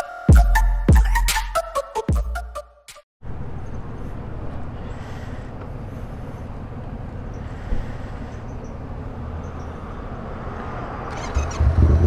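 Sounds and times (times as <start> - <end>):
motorcycle engine idling: 3.4 - 10.2.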